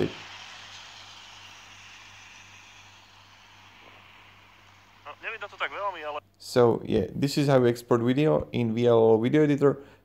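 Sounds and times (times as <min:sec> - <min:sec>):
traffic hiss: 0:00.0 - 0:06.2
faint low hum: 0:02.8 - 0:09.0.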